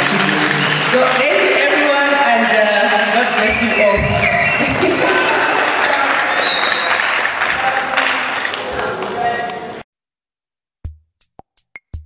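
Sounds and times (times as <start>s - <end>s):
audience clapping: 0.0s - 9.8s.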